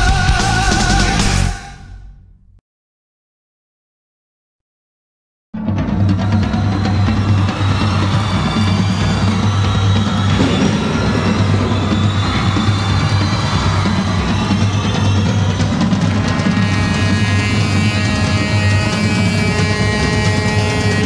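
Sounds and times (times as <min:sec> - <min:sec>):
drums: 0:00.0 - 0:02.4, 0:05.6 - 0:21.0
low drone: 0:09.5 - 0:18.7.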